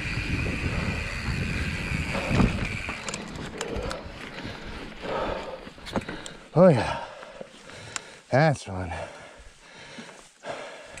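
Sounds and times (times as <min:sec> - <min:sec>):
bike rolling over dirt trail: 0:00.0 - 0:06.4
rider breathing hard: 0:00.0 - 0:11.0.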